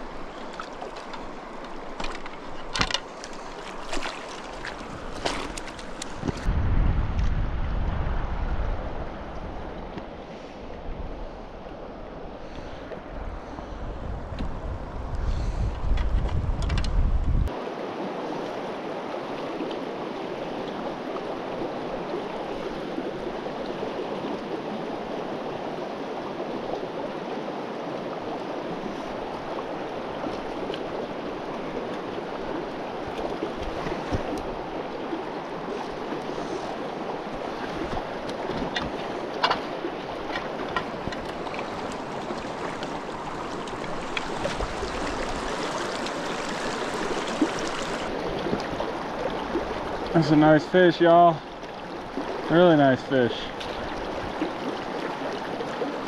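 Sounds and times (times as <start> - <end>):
river rushing over stones: 17.5 - 56.0.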